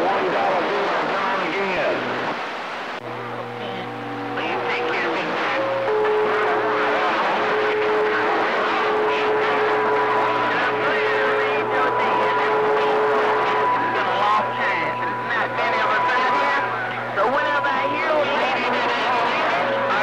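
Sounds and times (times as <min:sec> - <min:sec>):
faint garbled voices: 0:00.0 - 0:20.0
radio static hiss: 0:00.0 - 0:20.0
low hum: 0:00.6 - 0:20.0.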